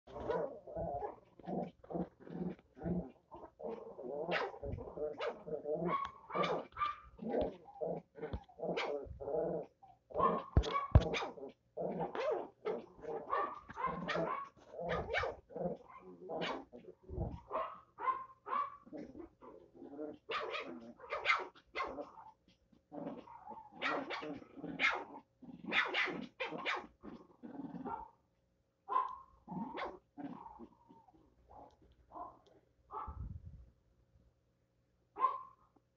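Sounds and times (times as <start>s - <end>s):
small dogs barking and growling: 0.1s - 28.2s, 28.9s - 33.2s, 35.2s - 35.6s.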